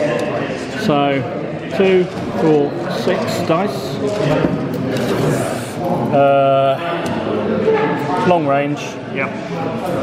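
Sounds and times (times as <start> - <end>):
indistinct chatter in echoing hall: 0.0 - 10.0.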